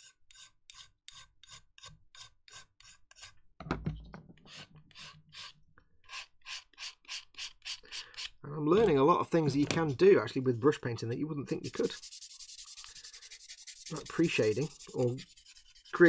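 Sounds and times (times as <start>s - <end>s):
filing and sanding plastic: 4.5s - 16.0s.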